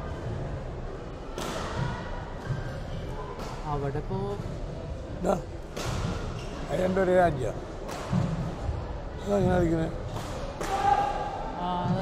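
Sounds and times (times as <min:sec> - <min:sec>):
racket hitting shuttlecock: 0:10.1 - 0:11.1.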